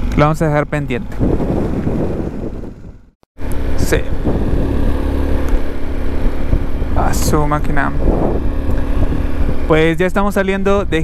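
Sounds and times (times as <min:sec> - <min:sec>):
motorcycle engine drone: 0:00.0 - 0:11.0
road noise: 0:00.0 - 0:11.0.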